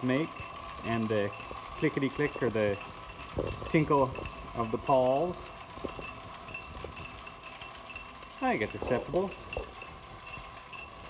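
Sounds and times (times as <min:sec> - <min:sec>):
electric motor whirring: 0:00.0 - 0:11.0
freewheel pawls clicking: 0:00.0 - 0:11.0.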